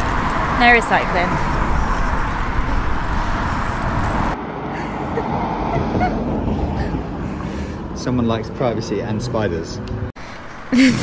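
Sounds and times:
wind rumbling on microphone: 0:00.0 - 0:10.1
road traffic: 0:00.0 - 0:11.0.

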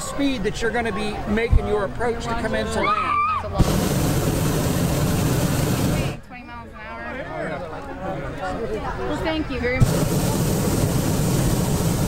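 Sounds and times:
propane burner rushing: 0:03.6 - 0:06.2, 0:09.8 - 0:12.0.

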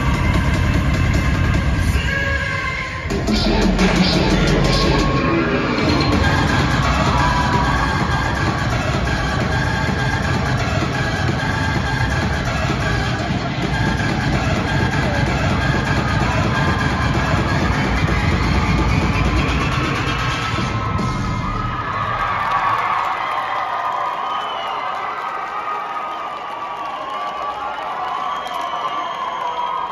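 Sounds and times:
dance music with heavy beat: 0:00.0 - 0:22.7
spectators cheering and yelling: 0:00.0 - 0:29.9.

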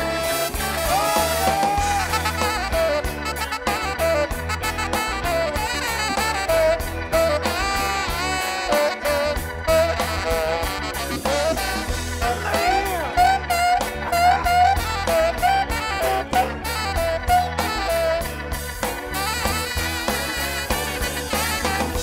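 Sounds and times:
drums and bass beat: 0:00.0 - 0:22.0
saxophone melody: 0:00.0 - 0:22.0.

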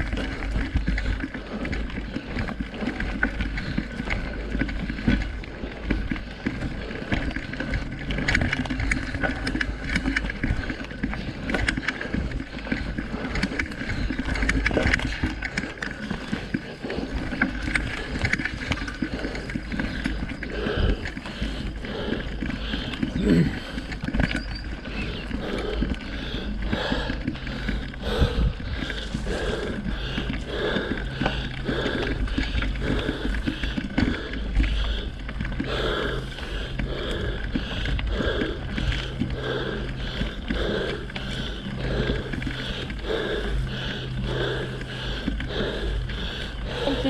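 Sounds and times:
bike tyres rumbling on dirt: 0:00.0 - 0:47.0
heavy breathing: 0:00.0 - 0:47.0.

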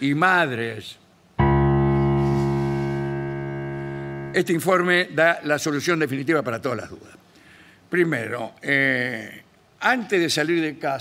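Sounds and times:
piano chord held: 0:01.4 - 0:04.6.

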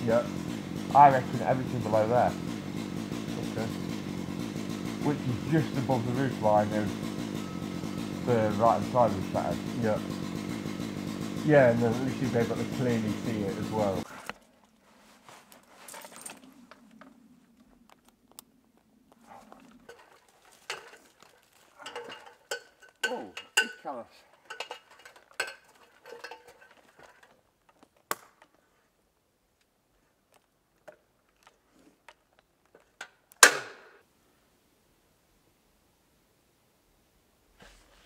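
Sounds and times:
harness hardware clinking: 0:17.8 - 0:28.5.

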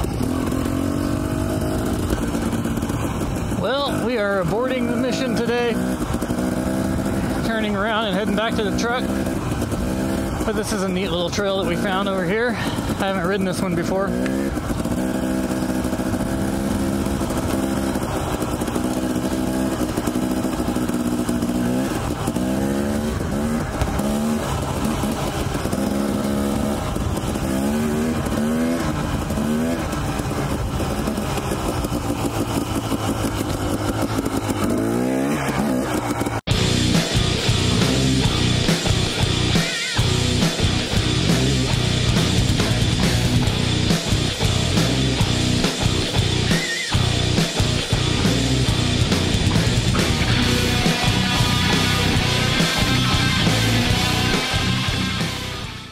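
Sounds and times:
dirt bike engine revving: 0:00.0 - 0:55.9
rock music with distorted guitars: 0:00.0 - 0:55.9.

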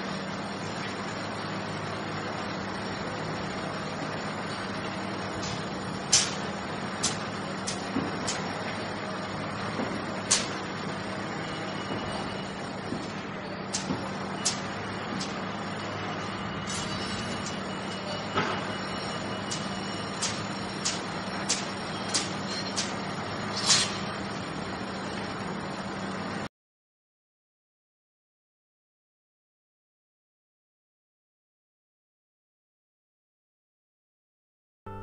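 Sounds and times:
vehicle driving hum: 0:00.0 - 0:26.5
sharp clicks and knocks: 0:05.4 - 0:06.4, 0:07.0 - 0:08.5, 0:20.2 - 0:23.0.

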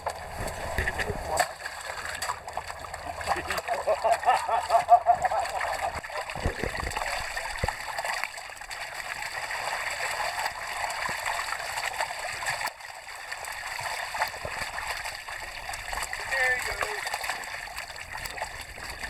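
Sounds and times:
water pouring from bucket: 0:00.0 - 0:19.0
stream rushing: 0:14.0 - 0:19.0.

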